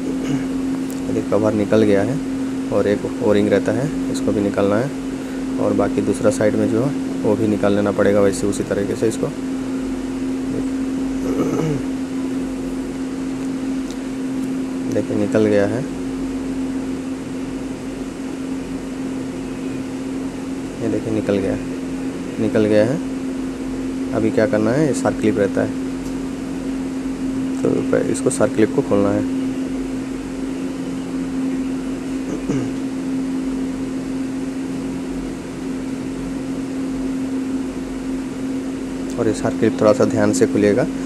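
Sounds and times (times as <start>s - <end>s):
steady machine hum: 0.0s - 41.0s.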